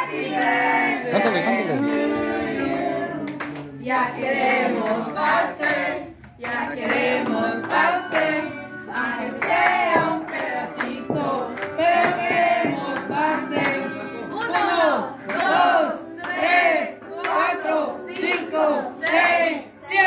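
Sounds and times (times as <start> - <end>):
group of people singing: 0.0 - 20.0.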